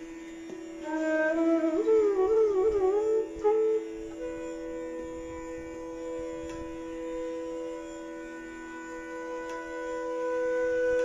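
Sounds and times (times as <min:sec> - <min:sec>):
bamboo flute phrases: 0:00.0 - 0:11.0
tanpura drone: 0:00.0 - 0:11.0.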